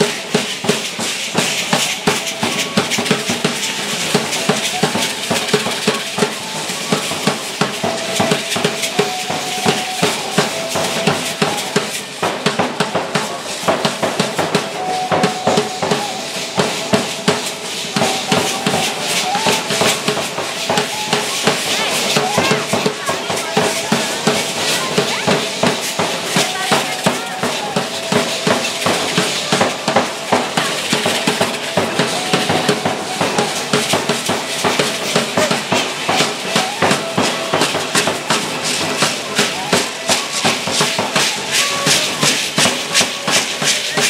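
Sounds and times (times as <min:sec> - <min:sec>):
drum beating fast rhythm: 0:00.0 - 0:44.0
rattling percussion: 0:00.0 - 0:44.0.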